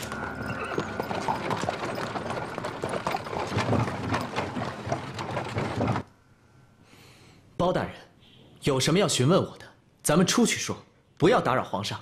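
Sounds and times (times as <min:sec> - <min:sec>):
horse hooves clip-clopping on stone: 0:00.0 - 0:06.1.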